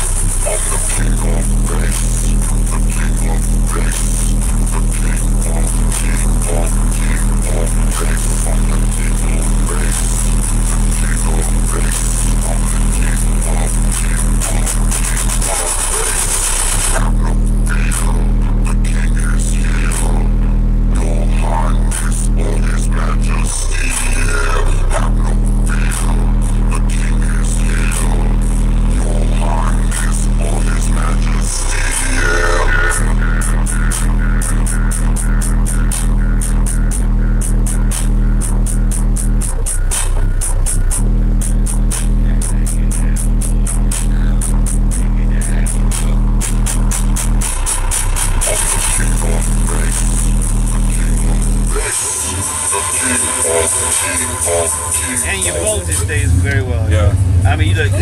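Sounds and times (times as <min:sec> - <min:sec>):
bass-heavy music through subwoofers: 0:00.0 - 0:58.0.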